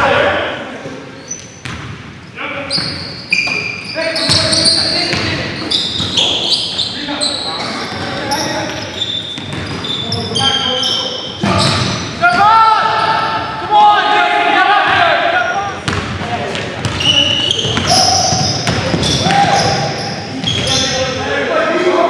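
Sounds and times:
sneakers squeaking: 0.8 - 13.6, 14.9 - 21.3
basketball bouncing: 1.6 - 2.0, 4.3 - 6.4, 9.4 - 9.9, 15.8 - 19.6
players calling out: 2.3 - 22.0.

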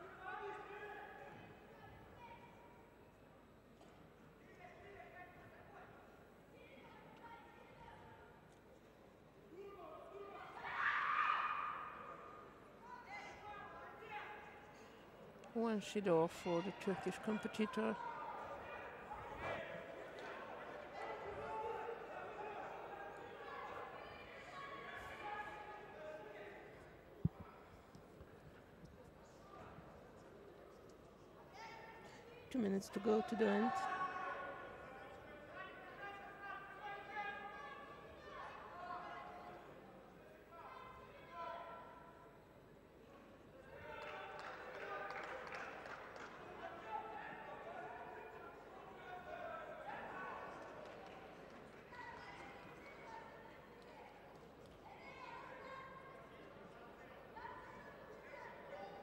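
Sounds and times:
voices in a sports hall: 0.0 - 59.0.

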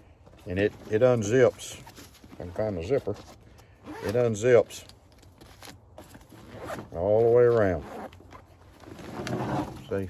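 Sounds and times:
backpack zipper rasping: 3.8 - 4.4, 6.3 - 8.2, 8.8 - 10.0.

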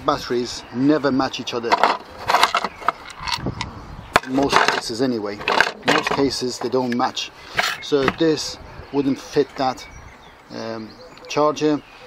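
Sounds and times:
plastic casings knocking and rattling: 1.7 - 3.5, 4.2 - 6.8.

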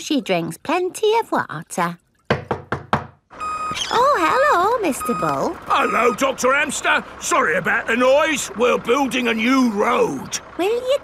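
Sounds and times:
cartoon knocks on a door: 2.3 - 3.2
roadworks machinery: 3.3 - 11.0.

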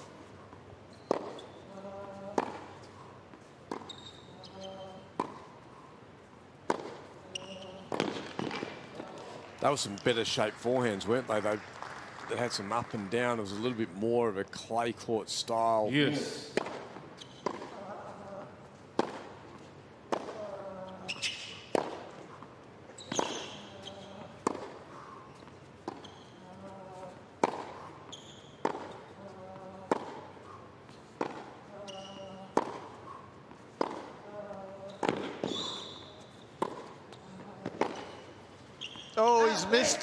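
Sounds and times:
shoe squeaks: 0.9 - 2.3, 3.7 - 5.1, 7.2 - 8.2, 17.2 - 18.4, 20.8 - 21.7, 22.9 - 24.4, 25.2 - 27.1, 27.8 - 29.6, 31.7 - 33.2, 34.5 - 39.7
tennis ball cracking off rackets: 1.0 - 1.4, 6.6 - 7.1, 7.9 - 9.4, 16.5 - 17.8, 18.9 - 19.4, 27.4 - 27.8, 32.5 - 33.0, 33.8 - 34.2, 34.9 - 35.7, 36.6 - 38.2.

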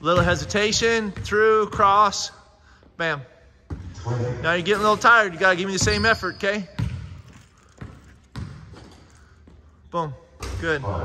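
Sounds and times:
basketball bouncing on hardwood floor: 0.1 - 2.0, 3.7 - 4.0, 4.7 - 9.6.

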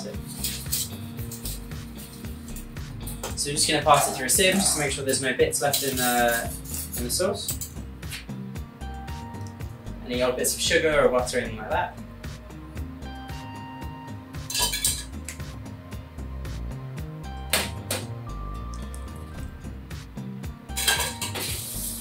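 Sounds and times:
quiet background music: 0.0 - 22.0
metal utensils knocking on pot: 14.5 - 15.1.

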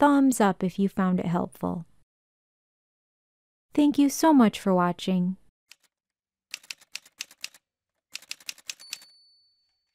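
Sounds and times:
typewriter keys clacking: 6.5 - 9.1.

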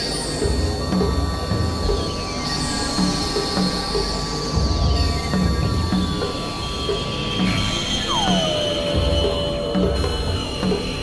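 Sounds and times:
squealing synthesizer tones: 7.4 - 11.0
low throbbing drone: 7.5 - 11.0.

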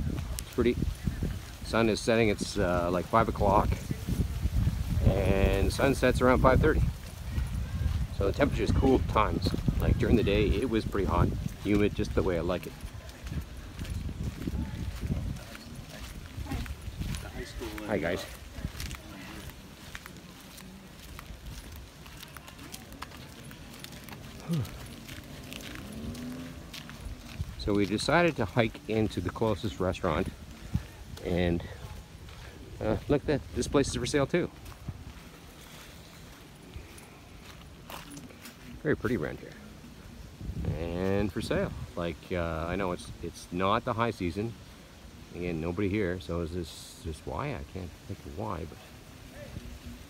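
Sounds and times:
wind buffeting microphone: 0.0 - 43.4, 48.7 - 50.0
footsteps on sandy dirt: 0.0 - 46.5, 47.2 - 50.0
faint outdoor hiss: 0.0 - 50.0.

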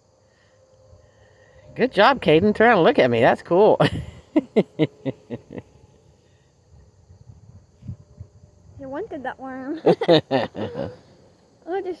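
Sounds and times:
person laughing in short bursts: 3.8 - 5.8, 9.9 - 11.1.

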